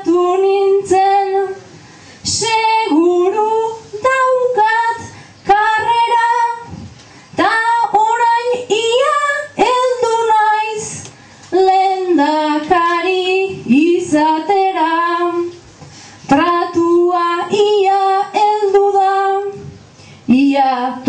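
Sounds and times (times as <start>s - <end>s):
person singing unaccompanied: 0.0s - 1.7s, 2.3s - 6.8s, 7.4s - 15.6s, 16.3s - 19.7s, 20.3s - 21.0s.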